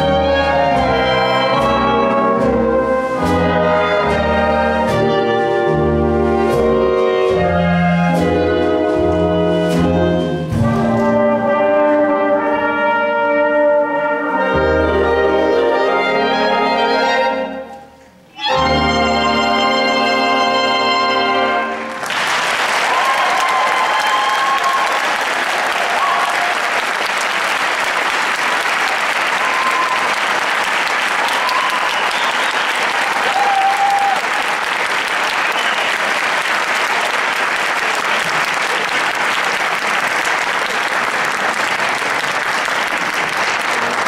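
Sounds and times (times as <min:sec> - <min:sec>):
audience applauding: 0:21.8 - 0:44.0
brief cheers: 0:22.8 - 0:26.7, 0:29.3 - 0:30.3, 0:31.1 - 0:34.6.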